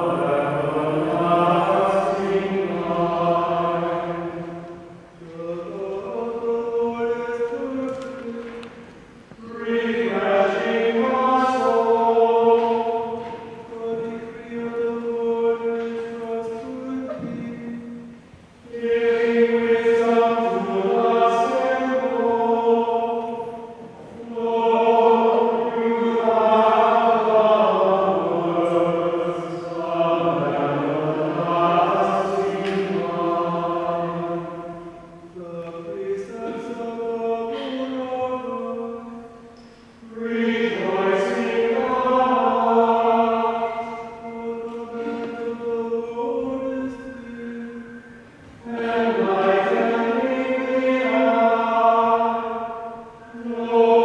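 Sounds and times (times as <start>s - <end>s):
voices singing a chant in unison: 0.0s - 54.0s.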